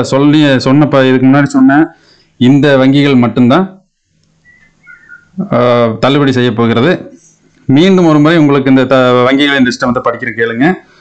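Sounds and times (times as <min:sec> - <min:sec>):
faint short high chirps: 0:04.4 - 0:05.4
man speaking: 0:05.3 - 0:10.9.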